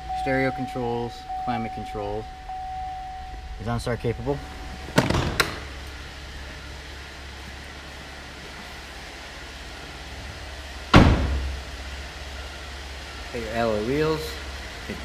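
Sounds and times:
steady low hum: 0.0s - 15.0s
car door slamming: 4.8s - 5.8s, 10.9s - 11.6s
car door latch clicks: 5.0s - 5.7s.

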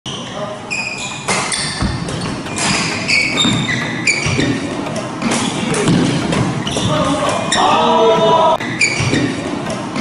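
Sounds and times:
shoes squeaking on wooden floor: 0.1s - 10.0s
racket hitting shuttlecock: 1.2s - 10.0s.

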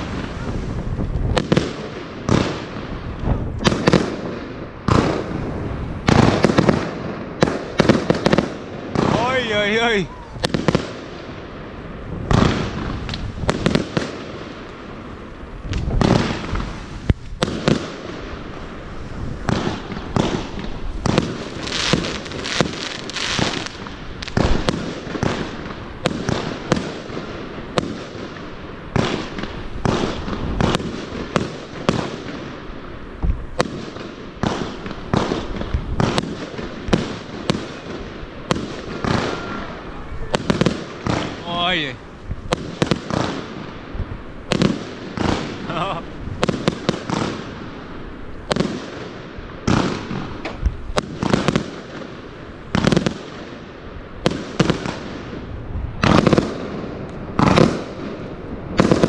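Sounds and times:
fireworks bangs: 0.0s - 59.0s.

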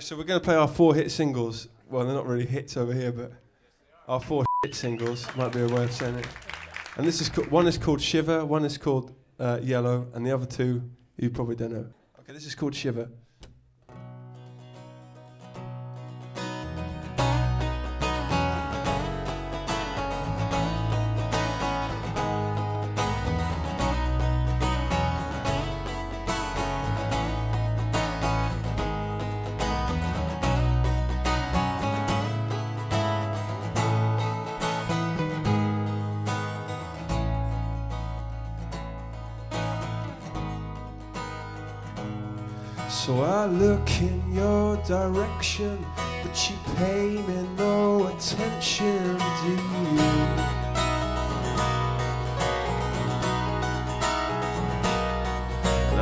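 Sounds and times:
strummed acoustic guitar: 13.8s - 56.0s
low bass notes: 16.5s - 56.0s
person singing: 42.8s - 51.4s, 55.8s - 56.0s.

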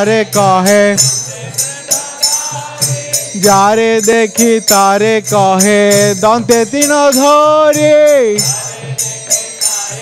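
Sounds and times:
hand cymbals beating: 0.0s - 10.0s.

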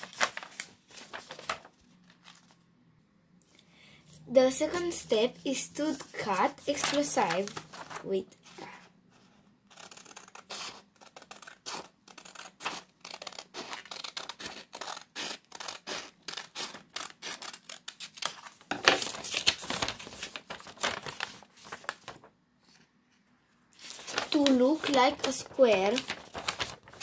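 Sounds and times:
scissors cutting paper: 4.7s - 8.2s, 9.7s - 18.4s, 24.0s - 27.0s.

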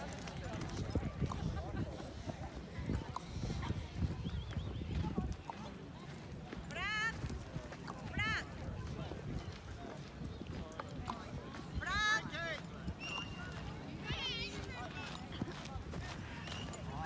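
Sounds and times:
footsteps on sand: 1.3s - 17.0s.

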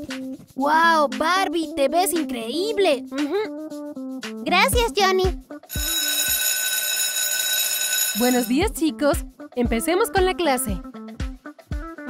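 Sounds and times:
electric school bell ringing: 5.7s - 8.6s.

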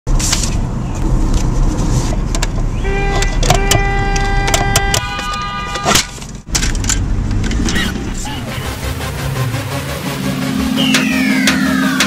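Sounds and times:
reedy single-pitched tone: 10.6s - 12.0s.

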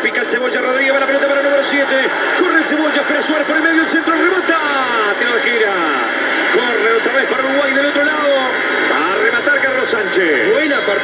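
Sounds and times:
football commentator speaking: 0.0s - 11.0s
stadium crowd noise: 0.0s - 11.0s.

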